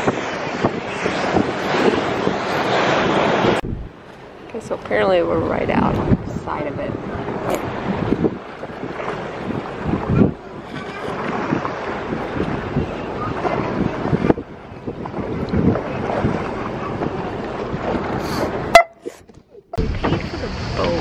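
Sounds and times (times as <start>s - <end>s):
water lapping: 0.0s - 21.0s
wind on microphone: 0.0s - 21.0s
boat motor running: 3.6s - 21.0s
people talking: 4.5s - 7.0s, 19.8s - 21.0s.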